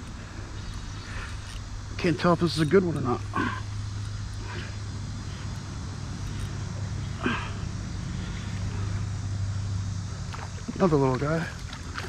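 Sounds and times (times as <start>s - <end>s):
fishing reel whirring: 0.0s - 10.0s.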